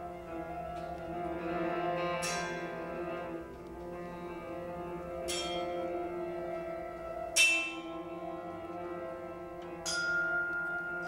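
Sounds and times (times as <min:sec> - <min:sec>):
held tuba and piano tones: 0:00.0 - 0:11.0
vibraphone notes: 0:05.2 - 0:11.0.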